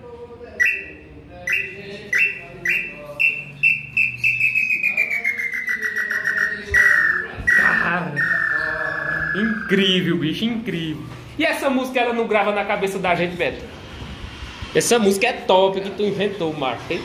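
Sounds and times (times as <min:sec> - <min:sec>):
wooden bird call whistling: 0:00.6 - 0:09.9.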